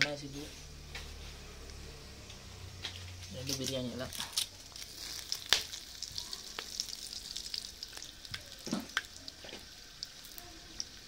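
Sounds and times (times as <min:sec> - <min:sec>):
spices sizzling in hot oil: 0:00.0 - 0:11.0
oil crackling and popping: 0:01.7 - 0:11.0.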